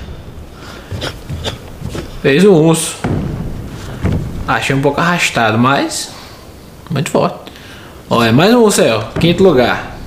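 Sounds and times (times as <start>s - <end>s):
sharp karate movement sounds: 0.8s - 2.2s.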